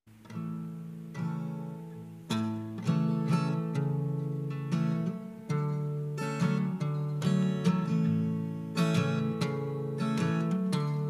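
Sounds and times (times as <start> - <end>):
acoustic guitar strumming: 0.1 - 11.0.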